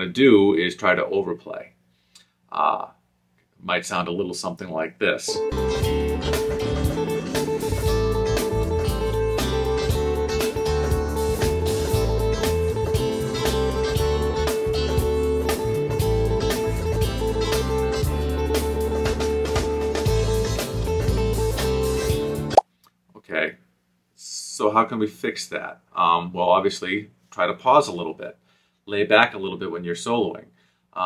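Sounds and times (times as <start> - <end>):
backing track with bass: 5.2 - 22.6
electric guitar picking one note: 5.4 - 19.6.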